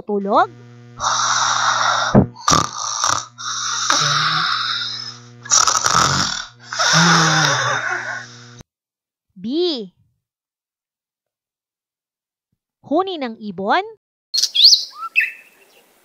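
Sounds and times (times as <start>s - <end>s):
person snoring: 1.0s - 8.6s
short snorts: 1.0s - 8.6s.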